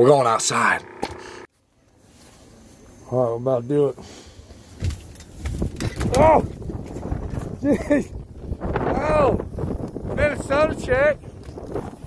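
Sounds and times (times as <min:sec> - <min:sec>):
wind buffeting microphone: 0:04.8 - 0:12.0.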